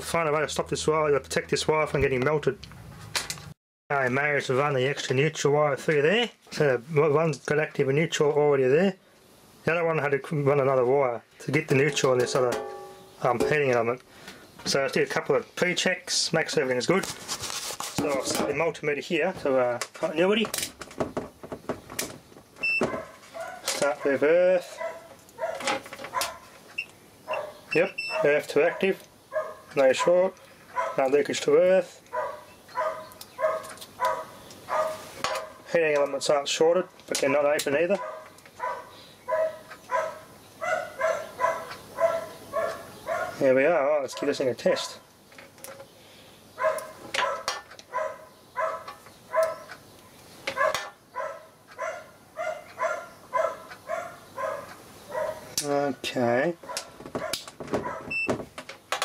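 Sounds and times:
multimeter beep: 22.6s - 22.9s, 27.8s - 28.2s
dog barking: 22.8s - 26.5s, 27.3s - 31.1s, 32.1s - 35.6s, 38.0s - 43.4s, 46.6s - 49.7s, 50.6s - 55.5s, 56.6s - 58.1s.

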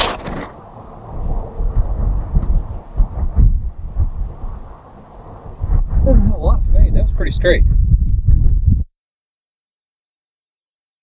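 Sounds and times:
wind buffeting microphone: 0.6s - 8.9s.

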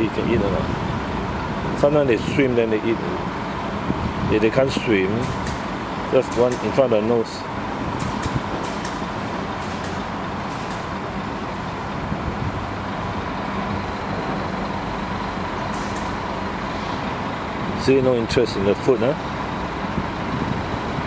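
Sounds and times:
continuous urban rumble: 0.0s - 21.0s.

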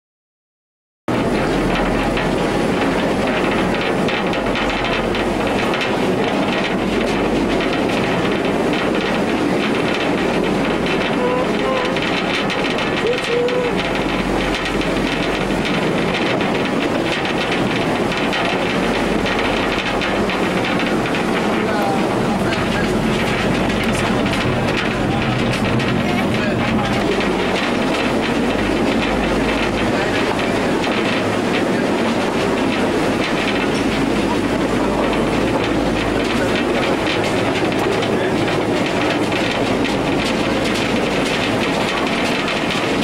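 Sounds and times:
train wagons rumbling on rails: 1.1s - 43.0s.

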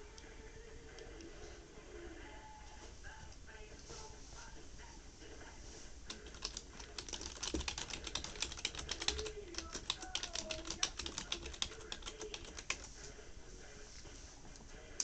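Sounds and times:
typing on computer keyboard: 6.1s - 12.9s.

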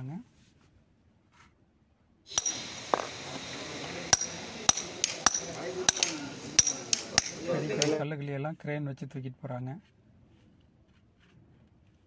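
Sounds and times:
hammer striking steel chisel: 2.3s - 8.0s.

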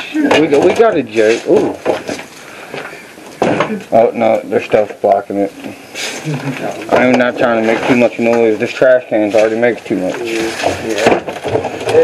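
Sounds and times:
clatter of hard objects: 0.2s - 3.7s, 6.7s - 8.5s, 9.4s - 12.0s
shuffling and handling noise: 0.4s - 3.4s, 6.0s - 12.0s.

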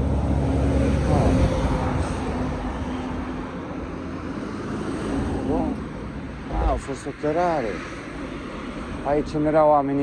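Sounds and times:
distant traffic going by: 0.0s - 10.0s.

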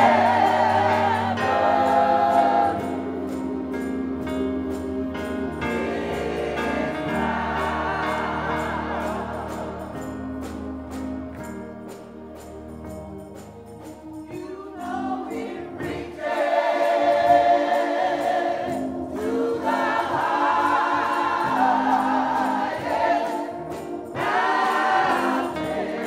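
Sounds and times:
gospel choir singing: 0.0s - 26.0s
instrumental accompaniment: 0.0s - 26.0s.

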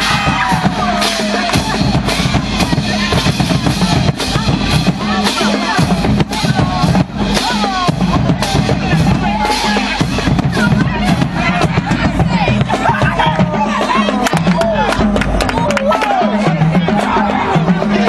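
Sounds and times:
band music with pounding drums: 0.0s - 18.0s
voices shouting: 0.0s - 18.0s.

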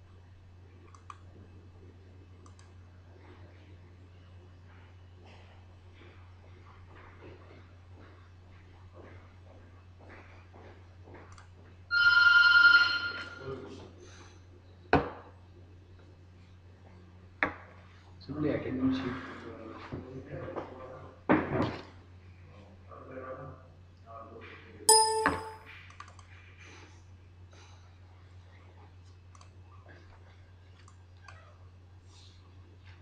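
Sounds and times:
faint mouse clicks: 0.9s - 1.2s, 2.4s - 2.8s, 25.9s - 26.3s, 29.3s - 29.5s, 30.8s - 31.4s
electronic ringing tone: 11.9s - 13.5s, 24.9s - 25.6s
loud ringing knock: 24.9s - 25.6s.

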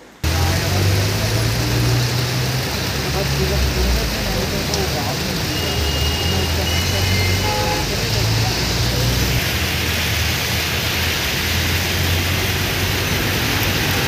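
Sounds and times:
heavy rain on road: 0.0s - 14.0s
traffic driving through water: 0.2s - 14.0s.

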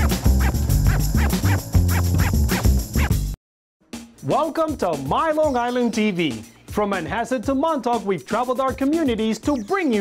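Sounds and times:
upbeat theme music: 0.0s - 10.0s.

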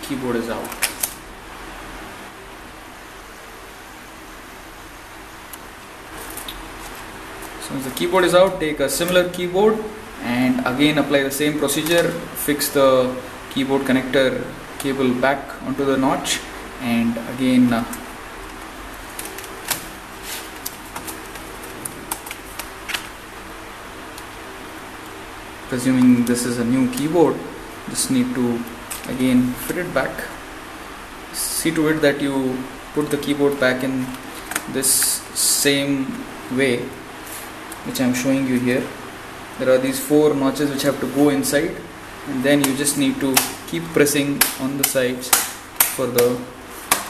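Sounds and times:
faint hum: 0.0s - 47.0s
room hiss: 0.0s - 47.0s
laptop keyboard clicks and rustles: 0.6s - 1.2s, 6.2s - 7.6s, 17.9s - 23.2s
laptop keys clicking: 20.6s - 23.1s.

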